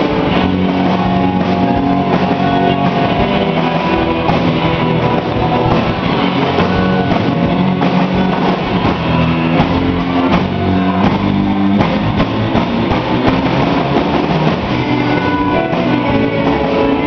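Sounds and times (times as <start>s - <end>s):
bass guitar: 0.0s - 17.0s
drum kit: 0.0s - 17.0s
electric guitar: 0.0s - 17.0s.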